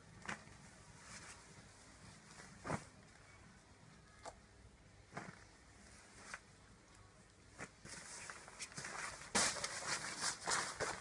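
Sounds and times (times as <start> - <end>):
fabric rustling: 0.1 - 3.3, 7.5 - 11.0.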